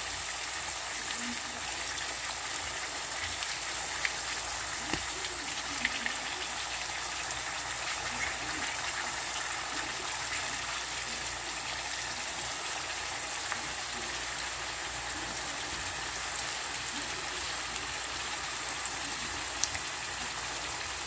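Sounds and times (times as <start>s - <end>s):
food frying in oil sizzling: 0.0s - 21.0s.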